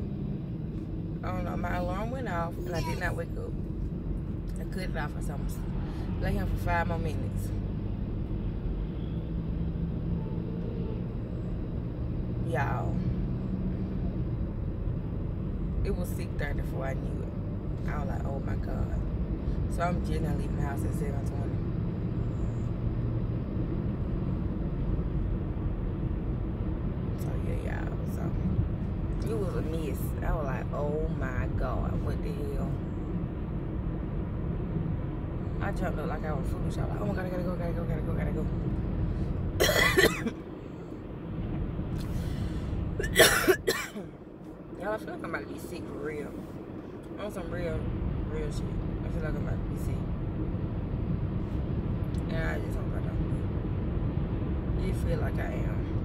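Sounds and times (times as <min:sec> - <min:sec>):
car road and engine rumble: 0:00.0 - 0:56.0
woman coughing: 0:39.6 - 0:40.4, 0:43.0 - 0:44.1.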